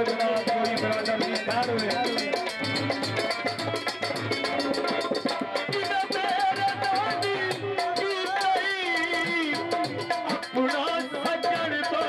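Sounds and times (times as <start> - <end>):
folk dance music: 0.0 - 12.0
ornamented melody line: 0.0 - 12.0
steady drum beat: 0.0 - 12.0.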